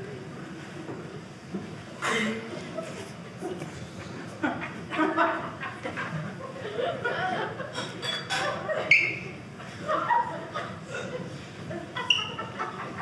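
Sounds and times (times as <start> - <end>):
audience laughing: 2.4 - 13.0.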